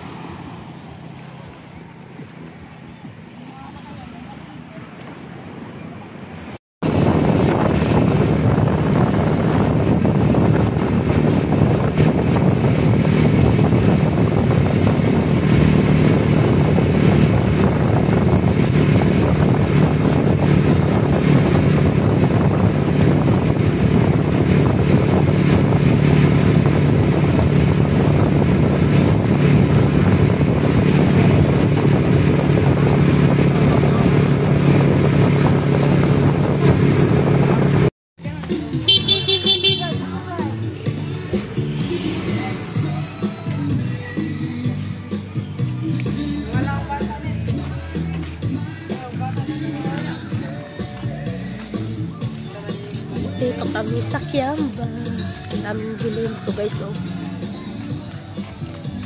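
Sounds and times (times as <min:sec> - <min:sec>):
vehicle engine drone: 0:00.0 - 0:48.8
road noise: 0:00.0 - 0:59.0.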